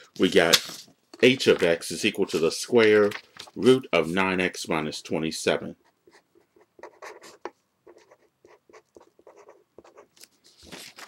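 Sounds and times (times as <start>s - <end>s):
pen scratching while writing: 6.0s - 10.3s.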